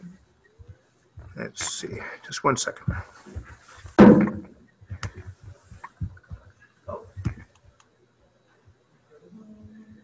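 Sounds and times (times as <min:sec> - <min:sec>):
loud bump near microphone: 0:03.9 - 0:05.0.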